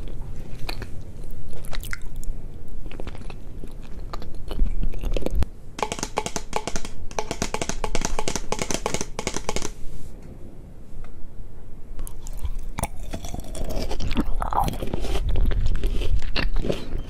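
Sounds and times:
mouth clicks chewing chocolate: 0.0 - 7.3, 12.0 - 17.0.

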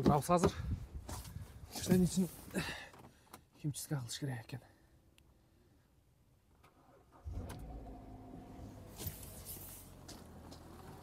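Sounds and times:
car engine starting and idling: 6.5 - 11.0.

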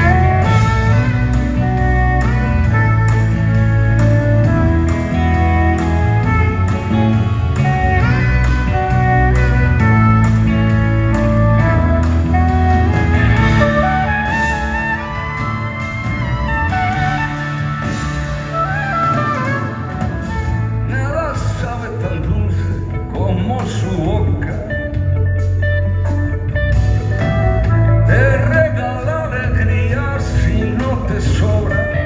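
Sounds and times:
electric guitar sliding notes: 0.0 - 32.0
live band playing instrumental: 0.0 - 32.0.

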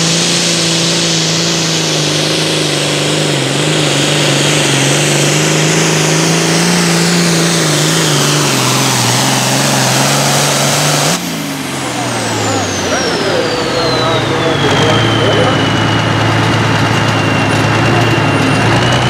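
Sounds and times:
diesel tractor engine under load: 0.0 - 19.0
high whine: 0.0 - 19.0.

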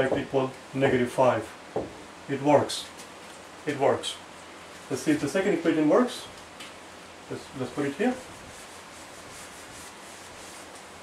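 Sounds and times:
eraser rubbing on whiteboard: 7.8 - 11.0.

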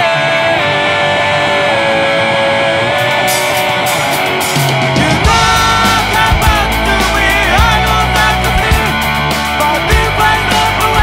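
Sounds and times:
rock electric guitars: 0.0 - 11.0.

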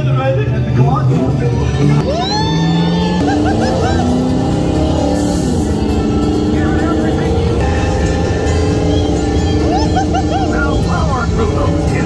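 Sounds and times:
ride car rumbling on track: 0.0 - 12.0
voices: 0.0 - 12.0.

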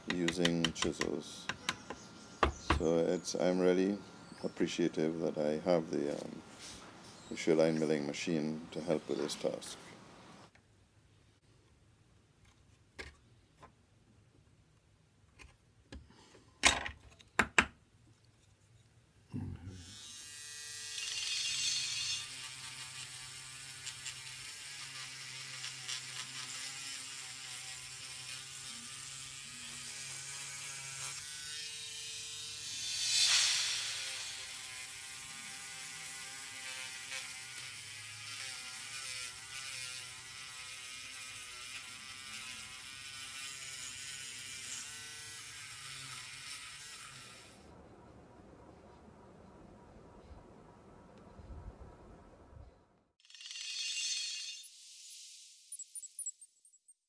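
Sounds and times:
sander motor buzzing: 19.8 - 47.6.

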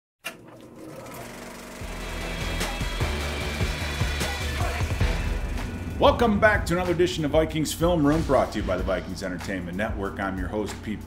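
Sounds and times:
mechanical whirring: 0.3 - 6.4
musical drone: 1.7 - 9.2
deep bass: 2.4 - 10.5.

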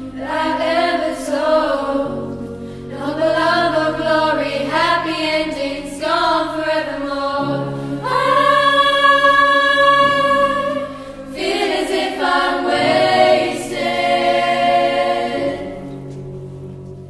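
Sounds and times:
girls' choir singing: 0.0 - 16.2.

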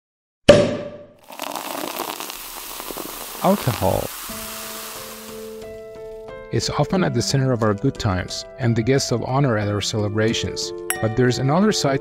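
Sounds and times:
champagne fizzing and spraying: 1.2 - 6.3.

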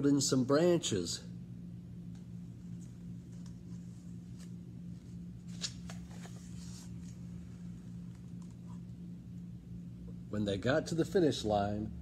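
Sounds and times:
steady low hum: 0.0 - 12.0
book pages turning: 2.7 - 8.9.

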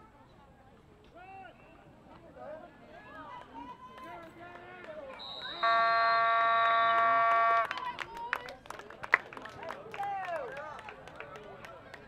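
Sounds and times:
high steady whistle tone: 5.2 - 7.7
horn blast: 5.6 - 7.7.

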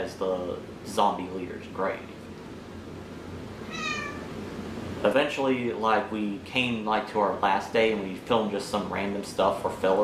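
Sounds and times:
low background hum: 0.0 - 10.0
cat meowing: 3.6 - 4.4.

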